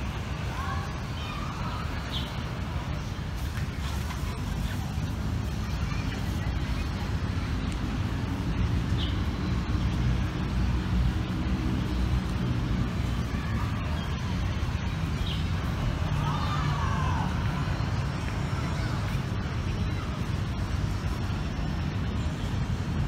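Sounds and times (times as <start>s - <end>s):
low rumble of road traffic: 0.0s - 23.0s.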